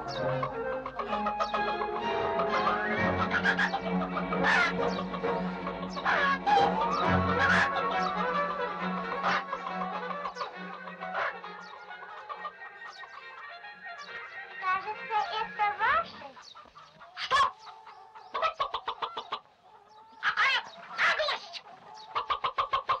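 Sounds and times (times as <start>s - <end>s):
orchestral music: 0.0s - 15.7s
roosters clucking and squawking: 0.0s - 23.0s.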